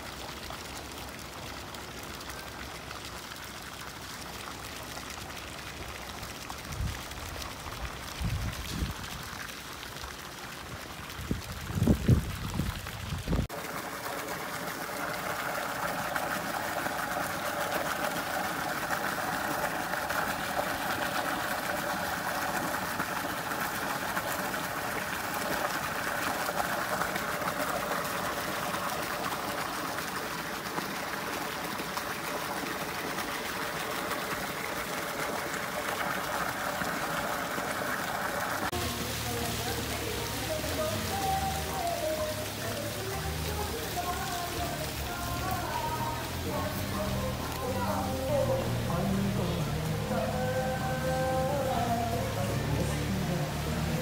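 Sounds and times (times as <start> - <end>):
fountain water splashing into pool: 0.0 - 54.0
wind rumbling on microphone: 6.7 - 9.3, 11.0 - 13.5.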